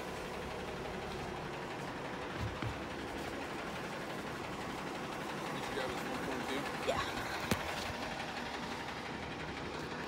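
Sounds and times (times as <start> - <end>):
fire truck engine idling: 0.0 - 10.0.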